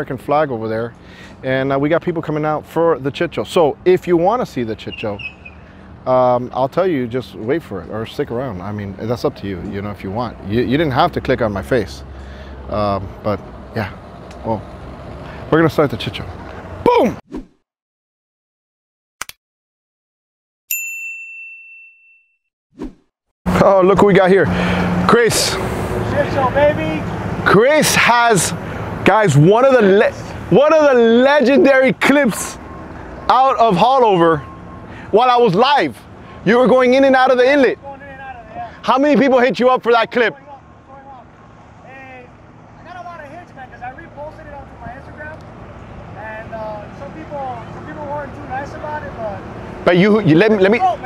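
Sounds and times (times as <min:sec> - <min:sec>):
bright bell chime: 0:20.7 - 0:22.4.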